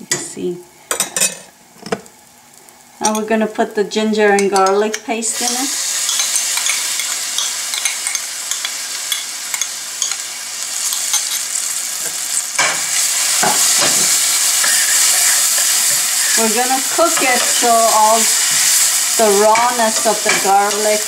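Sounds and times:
paste sizzling in a pan: 5.3s - 21.0s
spoon scraping a metal pan: 13.4s - 17.7s.

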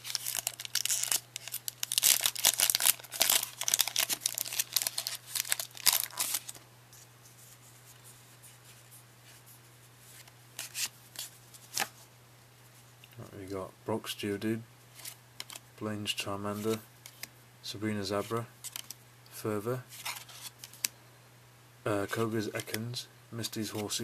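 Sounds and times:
foil wrapper tearing and crinkling: 0.0s - 6.6s.

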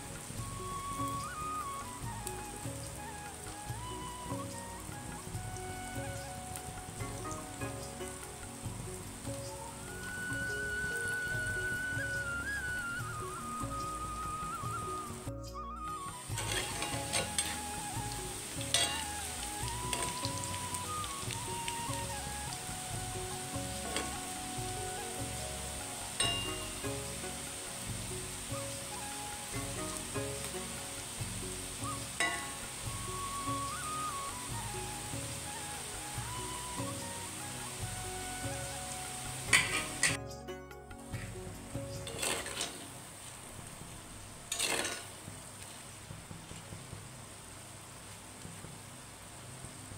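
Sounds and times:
fritters sizzling in hot oil: 0.0s - 49.9s
metal spoon clinking against pan: 16.4s - 17.6s, 18.7s - 19.1s, 26.2s - 26.8s, 32.2s - 32.6s, 44.5s - 45.1s.

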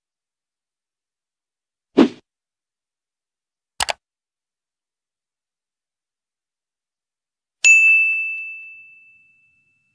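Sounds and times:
bright bell ding: 7.7s - 9.9s.

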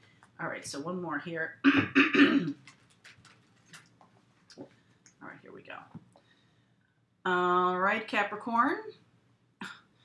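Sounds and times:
cards shuffling and rustling: 2.6s - 4.8s.

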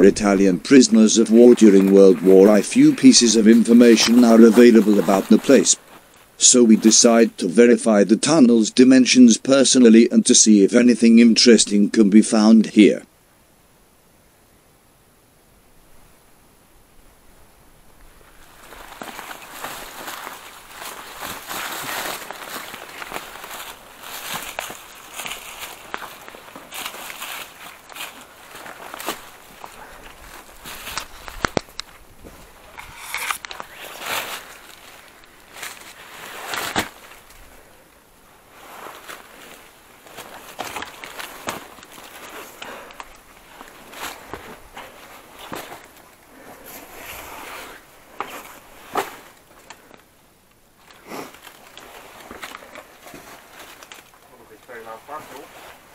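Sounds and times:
footsteps through dry brush: 0.0s - 7.2s, 18.1s - 55.9s
twigs rustling and snapping: 18.0s - 46.5s, 48.1s - 55.9s.

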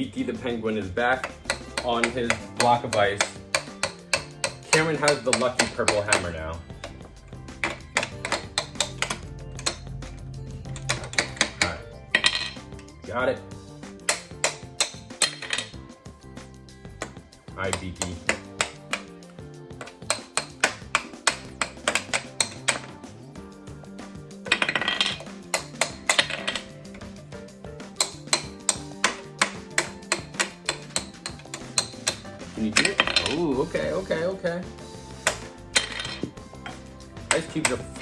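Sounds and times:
background music: 0.0s - 38.0s
plastic hammers tapping plastic: 1.0s - 10.0s, 10.6s - 12.3s, 14.0s - 15.8s, 16.8s - 23.0s, 24.4s - 27.2s, 27.8s - 34.0s, 35.0s - 38.0s.

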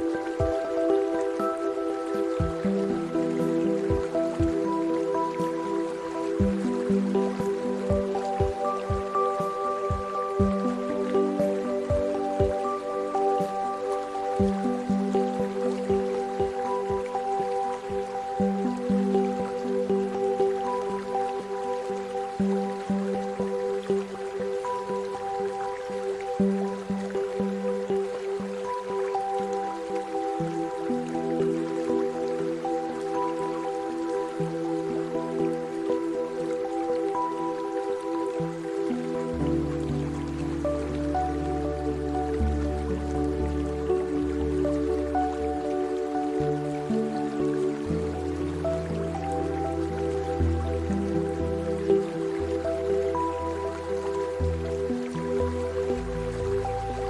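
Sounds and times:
calm ambient music: 0.0s - 57.0s
soft water dripping: 0.0s - 57.0s.

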